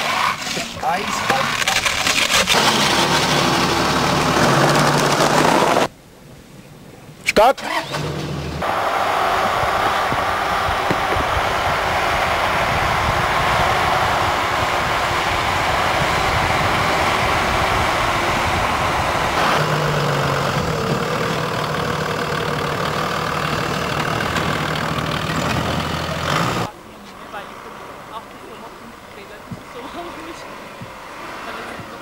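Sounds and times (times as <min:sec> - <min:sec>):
off-road vehicle engine running: 0:00.0 - 0:05.9, 0:07.7 - 0:32.0
rushing noise: 0:08.6 - 0:26.7.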